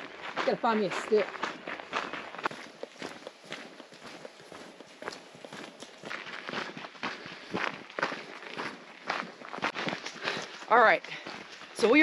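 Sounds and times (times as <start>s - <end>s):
footsteps on hiking trail: 0.0s - 12.0s.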